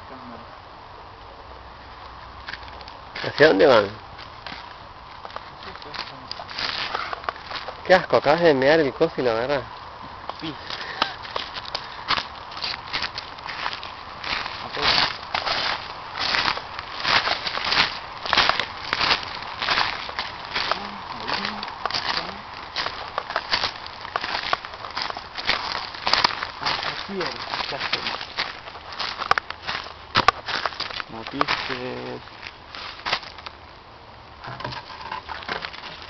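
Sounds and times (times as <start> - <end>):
footsteps crunching dry leaves: 2.4 - 9.6, 10.4 - 33.7, 34.5 - 36.0.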